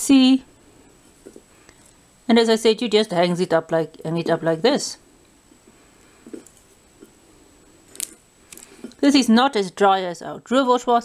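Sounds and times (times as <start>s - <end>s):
fingers breaking sausage: 7.9s - 8.7s.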